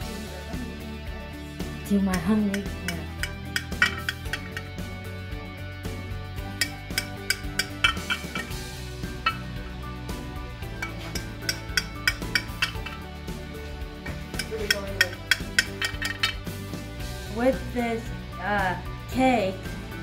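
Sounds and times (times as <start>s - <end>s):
background music: 0.0s - 20.0s.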